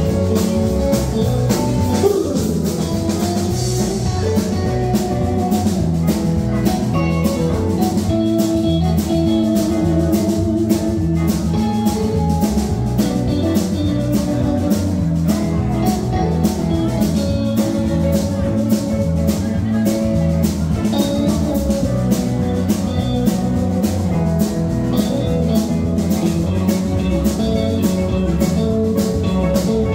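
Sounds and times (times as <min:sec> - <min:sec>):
live rock band playing: 0:00.0 - 0:29.9.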